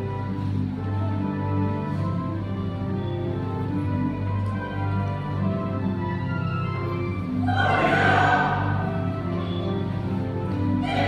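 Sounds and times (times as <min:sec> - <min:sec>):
sustained instrumental accompaniment: 0:00.0 - 0:11.0
church choir singing: 0:07.4 - 0:09.4, 0:10.8 - 0:11.0.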